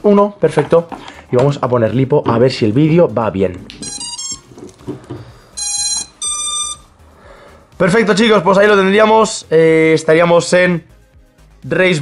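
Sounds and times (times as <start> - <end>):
drone motors beeping: 5.2 - 7.1.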